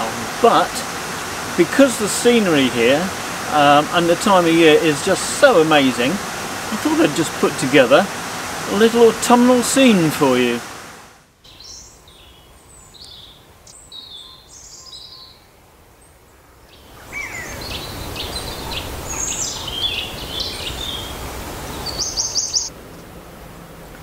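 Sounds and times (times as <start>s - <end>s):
steady rushing noise: 0.0s - 11.3s
small birds chirping: 11.5s - 22.7s.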